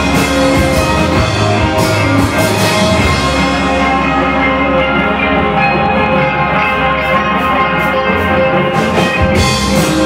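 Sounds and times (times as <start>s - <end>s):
ringing electric guitar chords: 0.0s - 10.0s
rock band playing: 0.0s - 10.0s.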